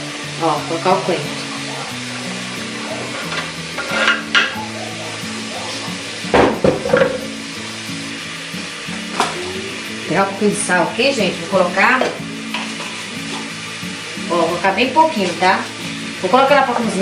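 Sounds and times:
background music: 0.0 - 17.0
meat sizzling in a pot: 0.0 - 17.0
utensils clattering: 3.0 - 4.6.

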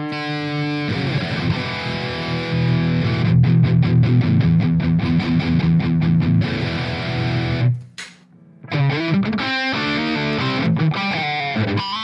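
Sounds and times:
distorted electric guitar: 0.0 - 12.0.

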